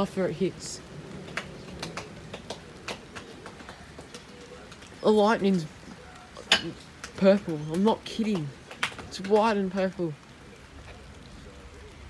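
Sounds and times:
rain hiss: 0.0s - 12.0s
raindrop ticks: 0.0s - 12.0s.

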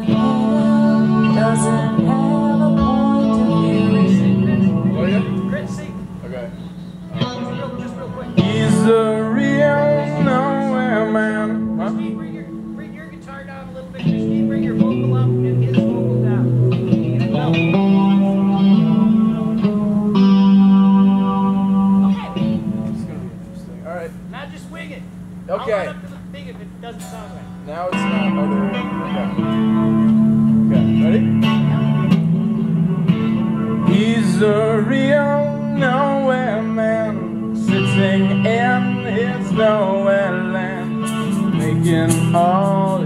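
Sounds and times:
man singing: 0.0s - 5.5s, 7.1s - 12.7s, 33.8s - 43.0s
electric guitar chords strummed: 0.0s - 43.0s.

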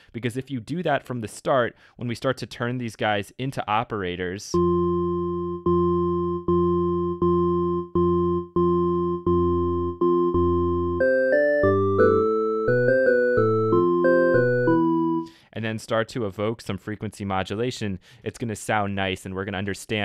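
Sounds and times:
organ-like synthesizer notes: 4.6s - 15.3s.

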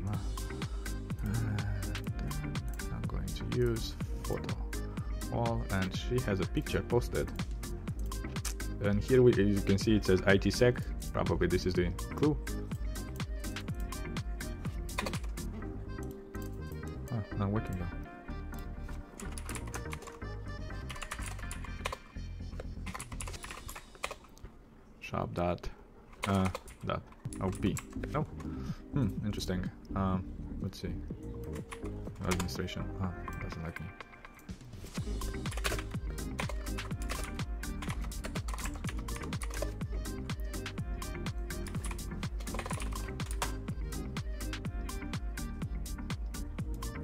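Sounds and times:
background music: 0.0s - 47.0s
keyboard typing: 12.9s - 17.0s, 18.5s - 24.4s, 26.1s - 28.6s, 31.3s - 32.6s, 33.2s - 44.7s.

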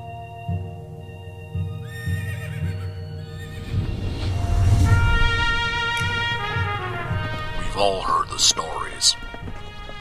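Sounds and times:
western-style music: 0.0s - 10.0s.

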